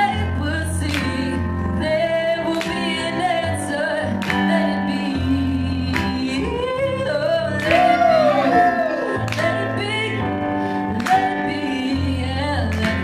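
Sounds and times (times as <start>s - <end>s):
keyboard chords: 0.0s - 13.0s
woman singing into microphone: 0.0s - 13.0s.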